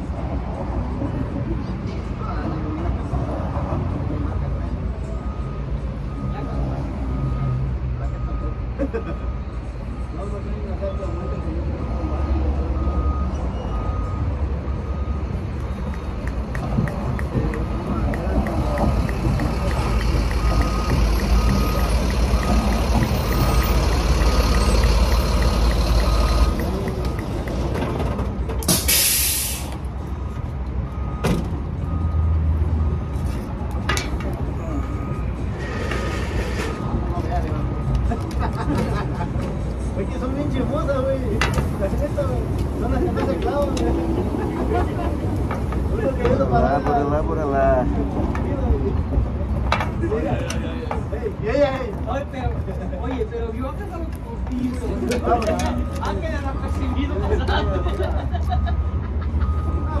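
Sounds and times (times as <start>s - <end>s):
truck engine rumble: 0.0s - 60.0s
voices: 1.0s - 29.7s, 33.9s - 60.0s
repeating reversing beep: 10.8s - 27.8s, 34.6s - 38.3s, 55.2s - 58.0s, 58.6s - 60.0s
air brakes hissing: 28.6s - 29.8s, 35.5s - 36.8s.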